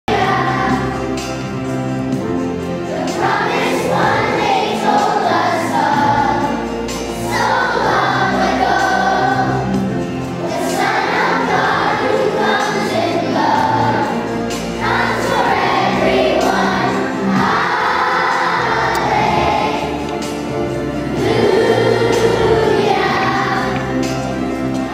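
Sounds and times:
children's choir singing: 0:00.1 - 0:24.9.

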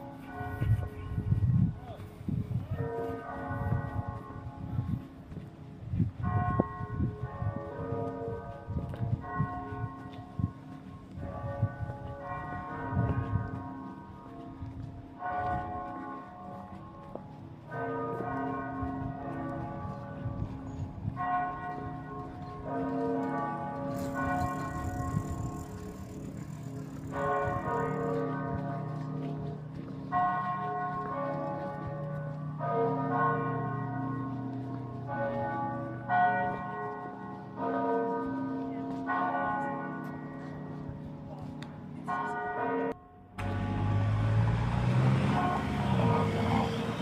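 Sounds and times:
church bells pealing: 0:00.0 - 0:47.0.

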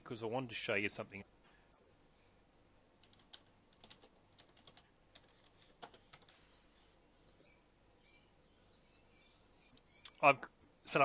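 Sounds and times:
typing on keyboard: 0:03.0 - 0:06.4.

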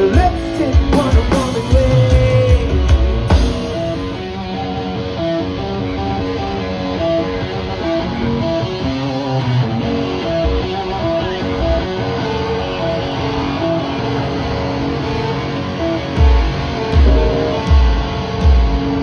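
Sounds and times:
bass guitar: 0:00.0 - 0:19.0
electric guitar melody: 0:00.0 - 0:19.0.

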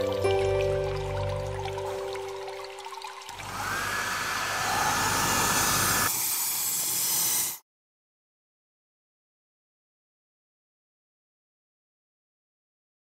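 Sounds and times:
rising tone: 0:03.4 - 0:06.1.

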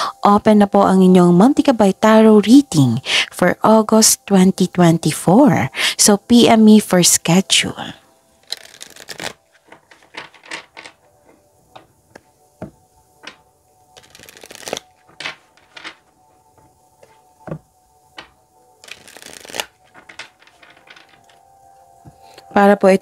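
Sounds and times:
cards being shuffled: 0:08.4 - 0:21.4.

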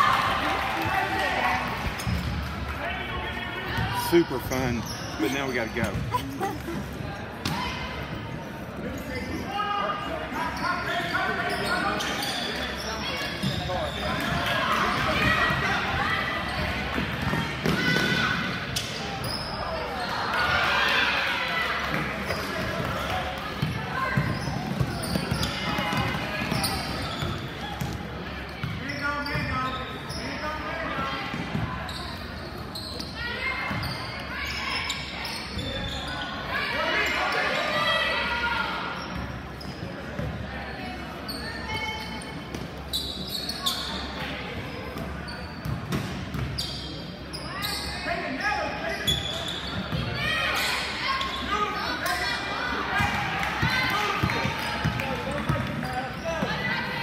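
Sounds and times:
basketball bouncing on court: 0:05.8 - 0:06.2, 0:16.5 - 0:18.5, 0:21.9 - 0:28.0, 0:28.6 - 0:29.6, 0:45.6 - 0:46.6.

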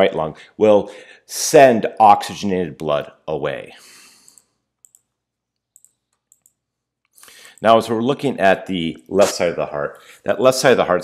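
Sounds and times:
faint mouse clicks: 0:04.2 - 0:05.1, 0:05.8 - 0:07.7.

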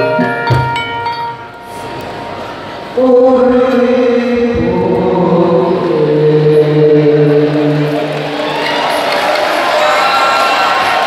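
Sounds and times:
chanted vocal with held notes: 0:02.9 - 0:08.3.

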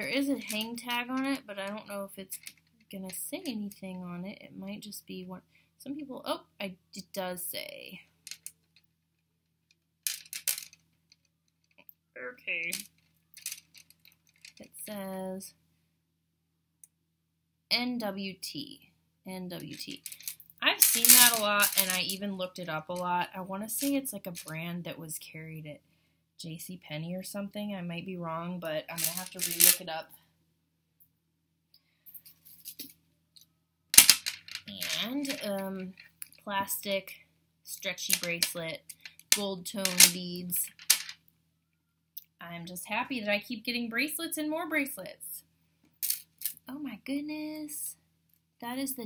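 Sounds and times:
jewelry clinking on plastic tray: 0:00.1 - 0:02.7, 0:08.3 - 0:08.6, 0:10.1 - 0:10.9, 0:12.7 - 0:14.6, 0:19.7 - 0:22.2, 0:28.9 - 0:29.9, 0:34.0 - 0:36.8, 0:37.9 - 0:41.2, 0:46.0 - 0:46.7
plastic beads clicking: 0:02.4 - 0:02.7, 0:10.0 - 0:11.3, 0:12.7 - 0:14.6, 0:19.8 - 0:22.1, 0:29.0 - 0:29.8, 0:34.0 - 0:35.5, 0:38.1 - 0:41.2.

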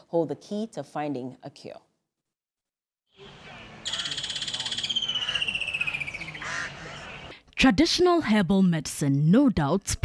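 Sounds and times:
outdoor background noise: 0:03.1 - 0:10.0.

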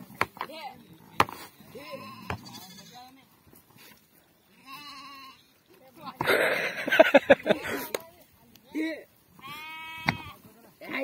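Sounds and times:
sheep and goats bleating: 0:01.6 - 0:03.3, 0:04.5 - 0:05.7, 0:08.8 - 0:11.0.

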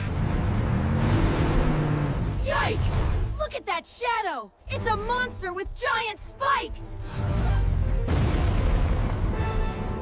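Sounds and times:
cartoon truck engines rumbling: 0:00.0 - 0:03.5.

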